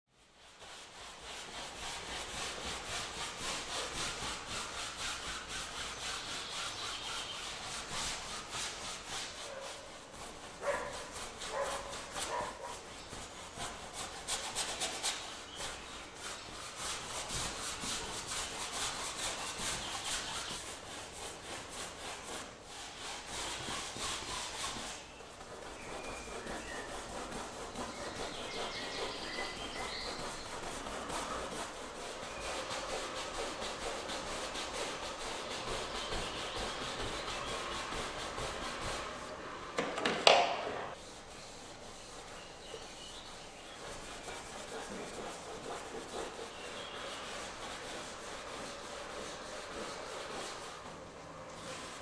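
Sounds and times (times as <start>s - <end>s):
paintbrush scrubbing on canvas: 0.1s - 39.7s, 40.8s - 52.0s.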